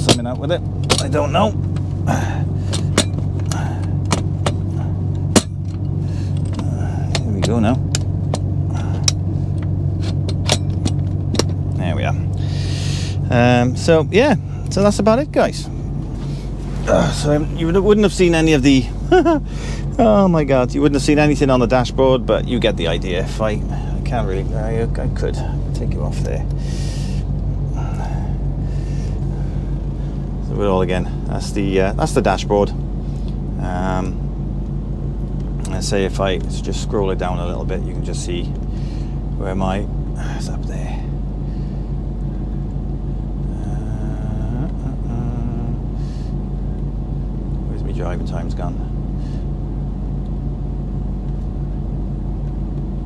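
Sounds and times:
diesel truck engine idling: 0.0s - 53.0s
steady low hum: 0.0s - 53.0s.

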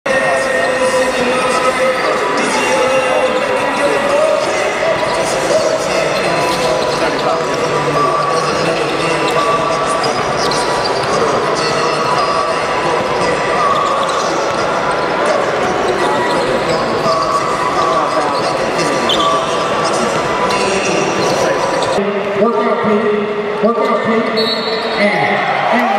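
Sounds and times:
murmur of voices: 0.1s - 25.9s.

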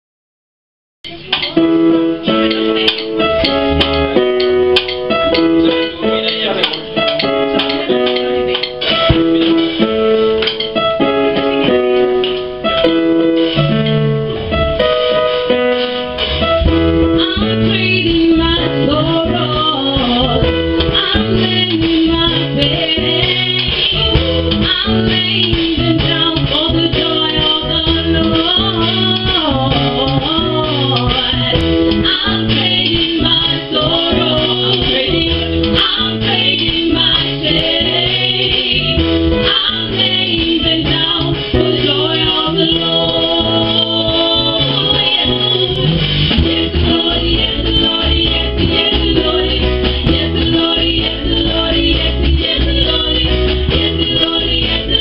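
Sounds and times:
guitar and bass accompaniment: 1.0s - 55.0s
worship song on keyboard: 16.2s - 55.0s.

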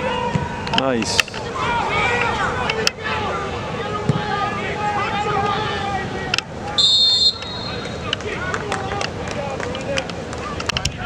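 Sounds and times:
spectators' voices: 0.0s - 11.0s
referee's whistle blast: 6.8s - 8.0s.

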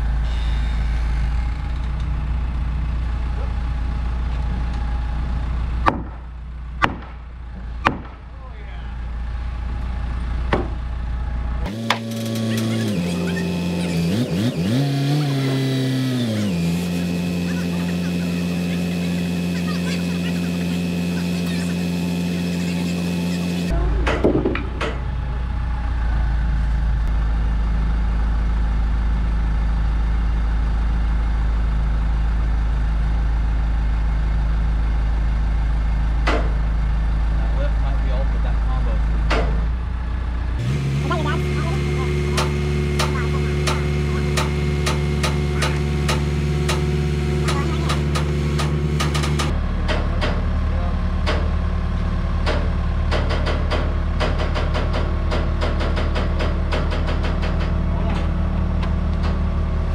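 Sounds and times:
engine running under load: 0.0s - 59.9s.

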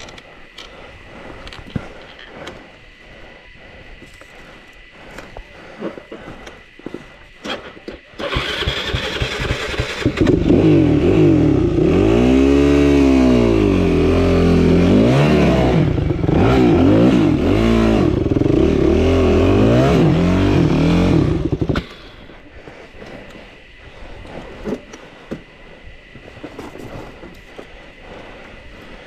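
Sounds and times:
dirt bike engine revving: 7.4s - 22.3s.

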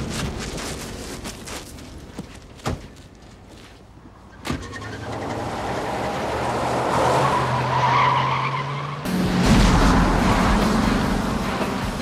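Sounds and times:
tyre noise on road: 0.0s - 12.0s
car engine accelerating: 4.6s - 12.0s.

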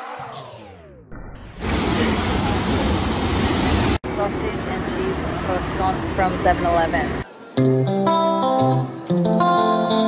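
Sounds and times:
loud rush of water: 1.6s - 4.0s.

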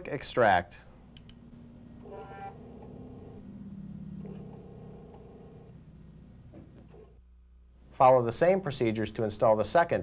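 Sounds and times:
floppy drive whirring: 1.0s - 5.8s.

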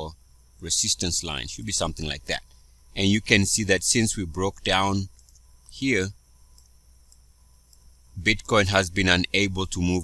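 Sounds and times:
person speaking: 0.0s - 6.2s, 8.2s - 10.0s
computer mouse clicks: 5.1s - 5.8s, 6.5s - 7.9s.

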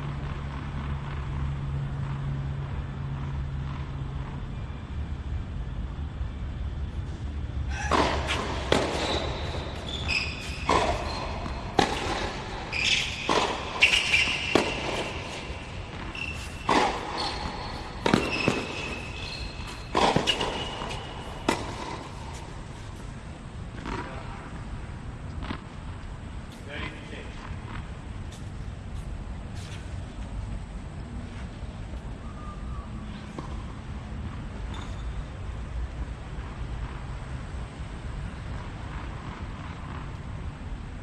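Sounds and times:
shoe squeaks on court: 7.7s - 22.6s, 34.6s - 35.3s
tennis ball hits: 7.7s - 22.8s.

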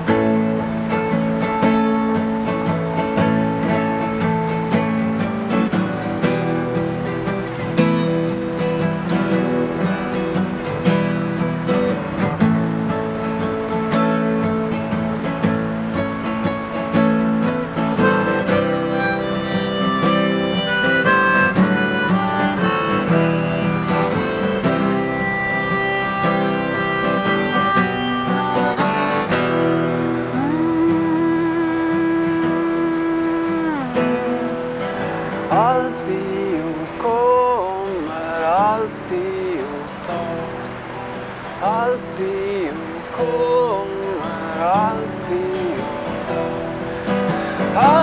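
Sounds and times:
sliding lead melody: 0.0s - 36.5s
acoustic guitars playing: 0.0s - 48.0s.

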